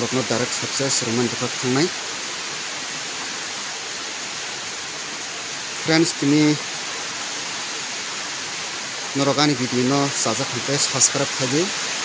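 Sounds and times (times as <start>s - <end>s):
steady even hiss: 0.0s - 12.0s.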